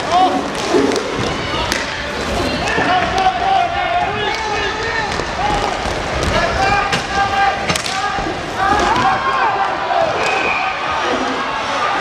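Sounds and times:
sticks and puck clacking on floor: 0.5s - 3.4s, 4.2s - 9.2s
voices shouting: 1.2s - 12.0s.

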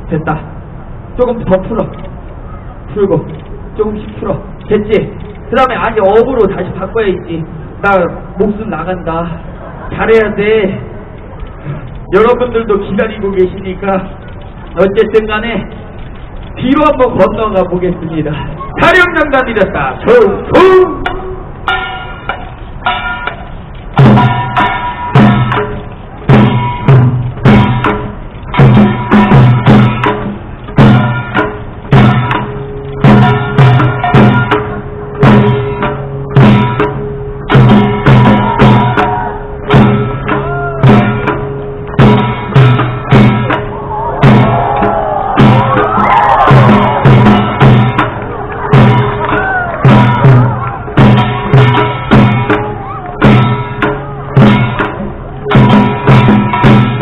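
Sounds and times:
deep drum beating: 19.6s - 57.0s
man calling out: 20.0s - 21.1s
held notes of melody instrument: 20.3s - 46.0s.

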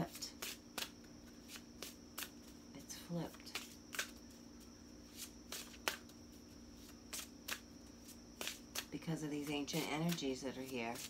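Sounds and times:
faint steady hum: 0.0s - 11.0s
cards shuffling: 0.3s - 2.6s, 3.3s - 11.0s.

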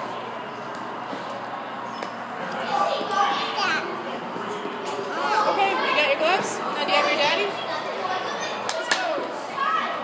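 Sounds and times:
echoing chatter in hall: 0.0s - 10.0s.

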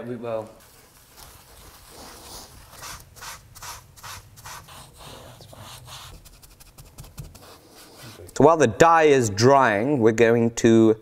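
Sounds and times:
cloth rag wiping leather: 0.6s - 8.4s.

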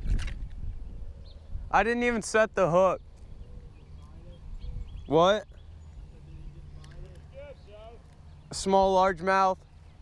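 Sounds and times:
low steady rumble: 0.0s - 10.0s
distant talking: 1.2s - 10.0s.

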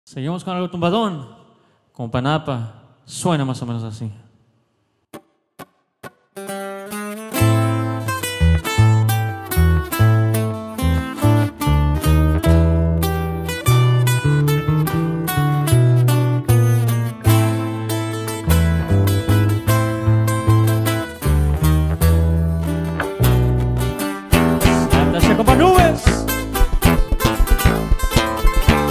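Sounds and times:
acoustic bass line: 7.4s - 28.9s
acoustic guitars plucking fast runs: 24.3s - 28.9s
short taps: 26.5s - 28.9s.

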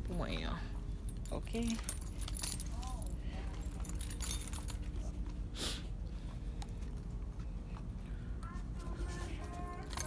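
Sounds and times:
faint steady hum: 0.0s - 10.0s
small metal objects jingling: 1.0s - 5.0s, 9.7s - 10.0s.

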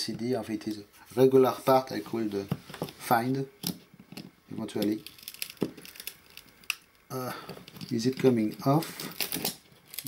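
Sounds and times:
circuit board clicking and crackling: 4.7s - 7.0s.

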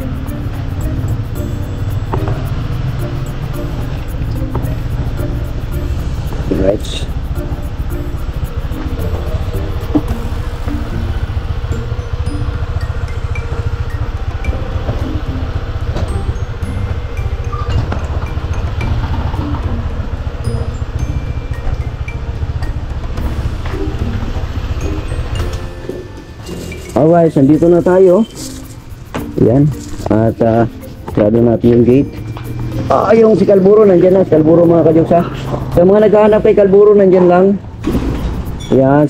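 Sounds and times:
faint chiming notes: 0.0s - 37.8s, 38.4s - 39.0s
scooter engine rumble: 0.0s - 39.0s.

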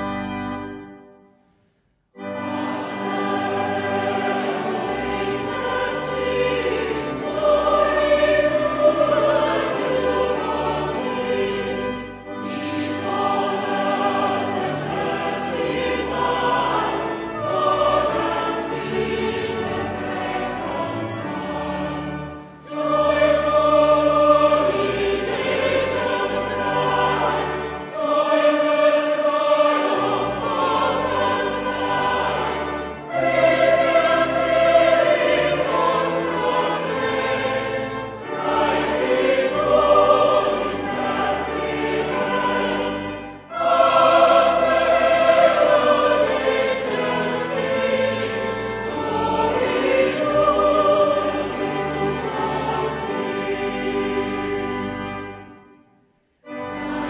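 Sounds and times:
choir singing carol: 0.0s - 1.5s, 2.1s - 57.0s.

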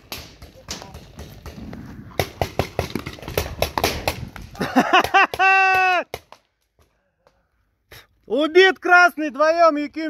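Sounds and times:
paintball markers firing: 2.2s - 5.5s.

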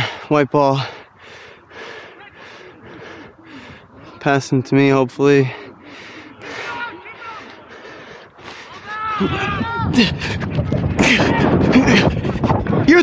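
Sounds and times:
players shouting: 1.5s - 12.1s.

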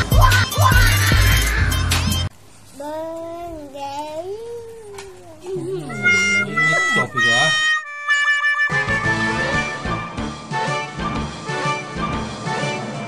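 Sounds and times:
toddler vocalising: 2.8s - 8.1s.

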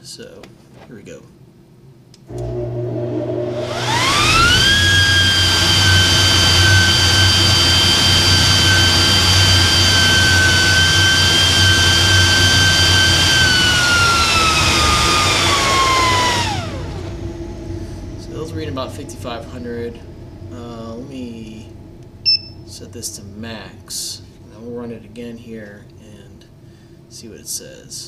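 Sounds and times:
high fan whine: 0.0s - 28.0s
dust collector humming: 2.3s - 28.0s
air rushing from duct: 3.6s - 25.5s.

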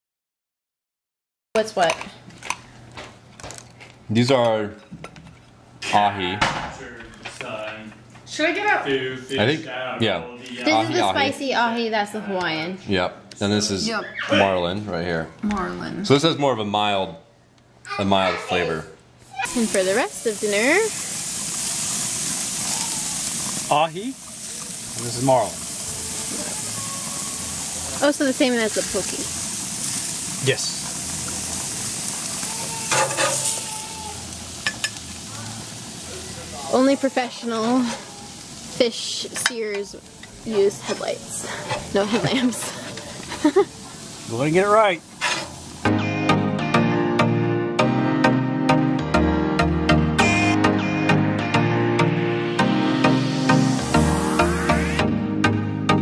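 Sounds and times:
fish sizzling on a grill: 19.3s - 45.9s, 53.2s - 55.0s.

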